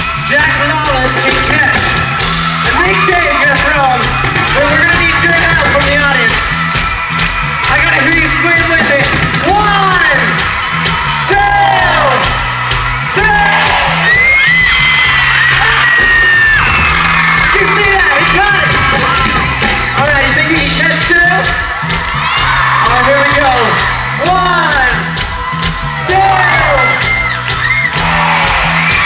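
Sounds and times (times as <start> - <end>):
fans screaming and whooping: 0.0 - 29.0
live band playing: 0.0 - 29.0.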